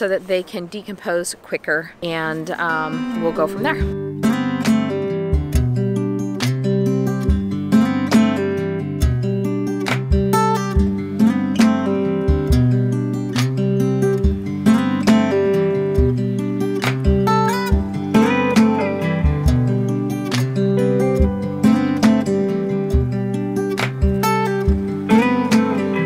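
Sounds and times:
acoustic guitar music: 0.0 - 26.0.

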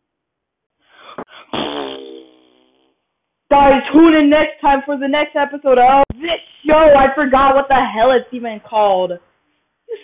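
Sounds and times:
buzzy pitched blat: 1.3 - 3.1.

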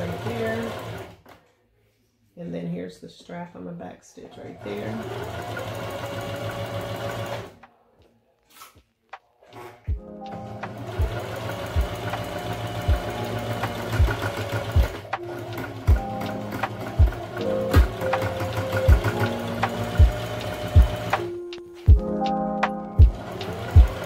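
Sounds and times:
electric sewing machine stitching: 0.0 - 1.3, 4.6 - 7.6, 9.5 - 21.3, 23.1 - 24.0
background music with low thumps: 8.8 - 24.0.

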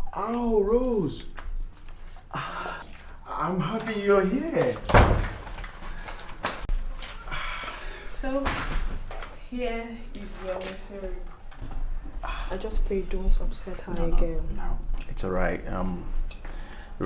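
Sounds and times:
wooden door slamming: 4.8 - 5.6.

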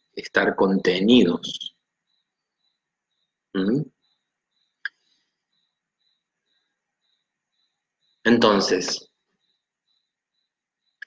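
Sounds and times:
faint high-pitched chirp: 0.0 - 11.0.

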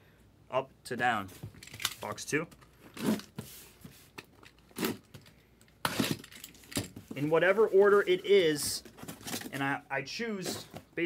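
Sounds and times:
cardboard scraping and rubbing: 2.9 - 4.1.

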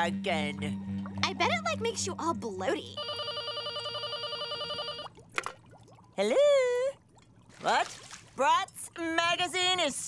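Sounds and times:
telephone bell ringing: 2.9 - 5.1.

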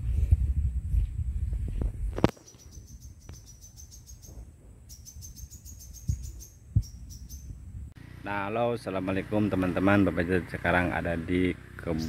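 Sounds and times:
high chirping call: 2.3 - 7.7.

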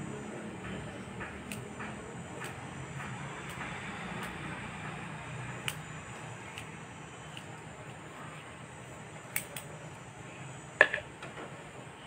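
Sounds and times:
low background hum: 0.0 - 12.0
scissors snipping hair: 1.0 - 5.0, 5.6 - 8.0, 9.3 - 9.7.

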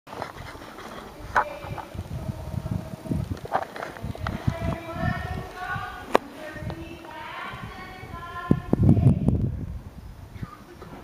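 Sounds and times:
muffled hoofbeats on sand: 0.1 - 9.3.

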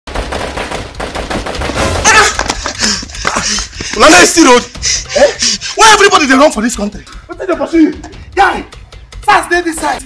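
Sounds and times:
rapid gunfire: 0.1 - 2.3
people shouting: 1.8 - 3.0.

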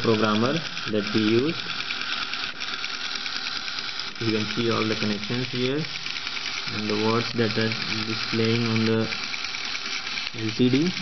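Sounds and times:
small electric motor buzzing: 0.0 - 11.0.

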